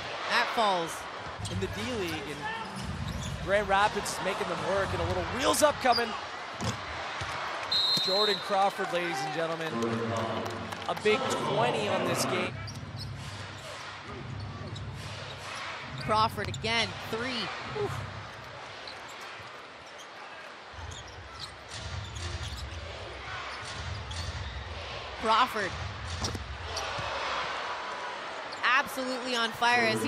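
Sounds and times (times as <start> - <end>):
arena crowd noise: 0.0 - 30.0.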